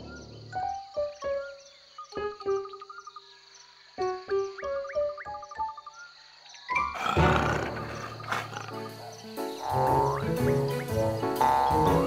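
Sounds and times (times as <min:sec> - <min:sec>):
background music: 0:04.0 - 0:12.0
cartoon lion roar: 0:07.0 - 0:09.0.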